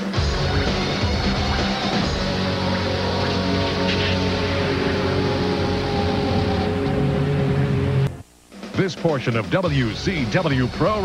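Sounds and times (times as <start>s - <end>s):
dense promo music with held tones: 0.0s - 11.0s.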